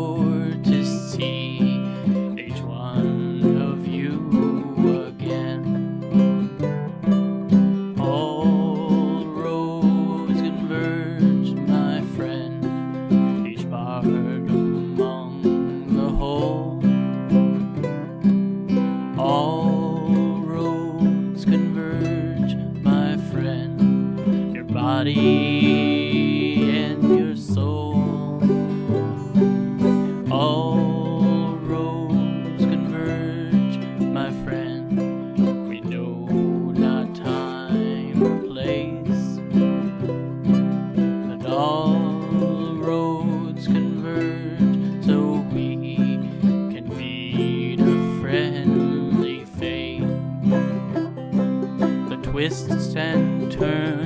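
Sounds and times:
acoustic guitar picking: 0:00.0 - 0:54.0
banjo: 0:00.0 - 0:54.0
ukulele: 0:00.0 - 0:54.0.

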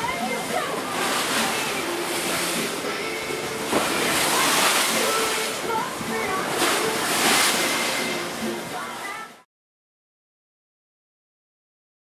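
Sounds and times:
rough sea splashing along boat hull: 0:00.0 - 0:09.4.

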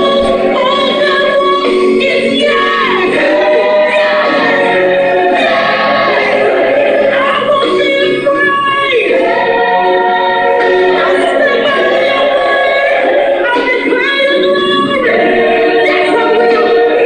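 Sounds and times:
gospel choir singing: 0:00.0 - 0:17.0.

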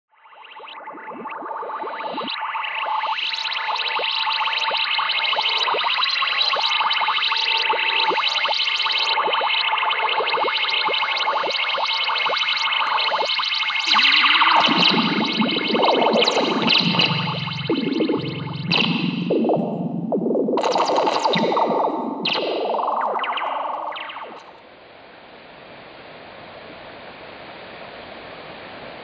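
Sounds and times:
experimental instrumental music: 0:11.9 - 0:24.5.

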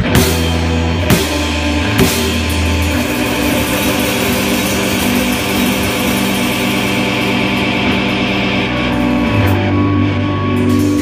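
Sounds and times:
distorted electric guitars droning: 0:00.0 - 0:11.0.

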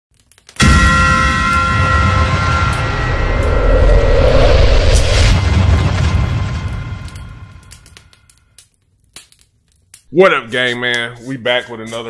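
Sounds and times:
loud cinematic hit: 0:00.6 - 0:08.1
low rumble: 0:00.6 - 0:08.1.

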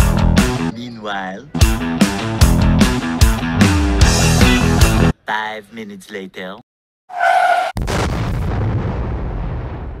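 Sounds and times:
explosion rumble: 0:07.8 - 0:10.0.

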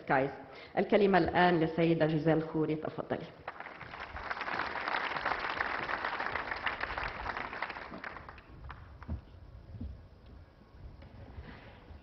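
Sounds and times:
audience applauding: 0:03.5 - 0:08.9.

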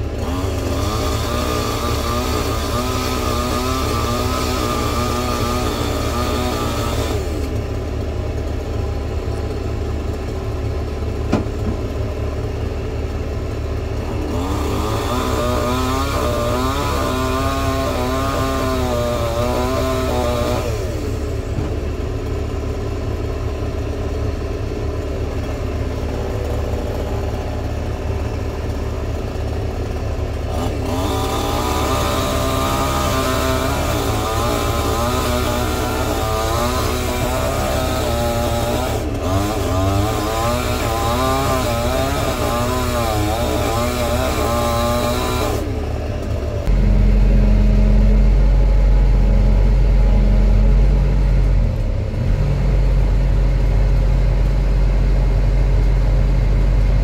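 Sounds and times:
diesel engine running: 0:00.0 - 0:57.0
hydraulic whine: 0:00.0 - 0:57.0.

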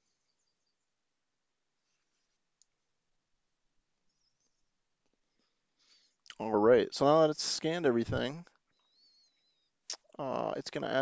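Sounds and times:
faint click: 0:02.6 - 0:02.8.

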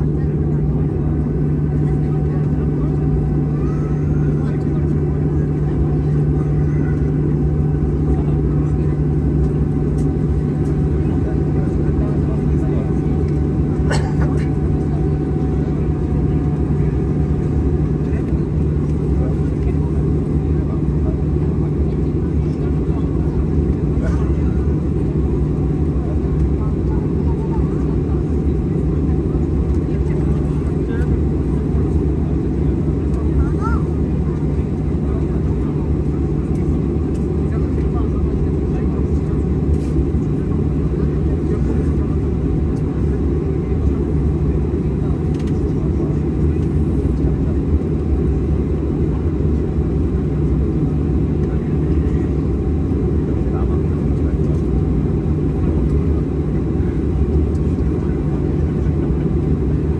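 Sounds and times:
jet engines rumbling: 0:00.0 - 0:59.9.

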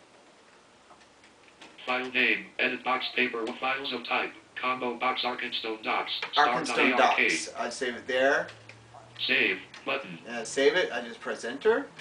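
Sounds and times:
synthesized voice reading: 0:01.8 - 0:08.4, 0:09.2 - 0:12.0.

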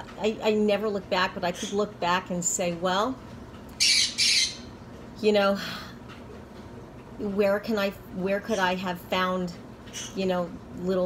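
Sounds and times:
parrot squawking: 0:03.8 - 0:04.7.

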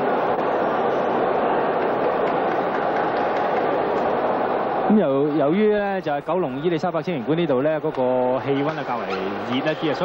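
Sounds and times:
murmur of large crowd indoors: 0:00.0 - 0:10.0.

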